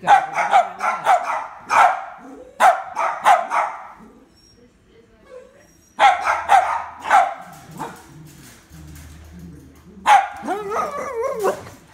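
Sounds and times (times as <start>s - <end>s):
dog barking sharply: 0.0s - 4.0s, 6.0s - 7.4s.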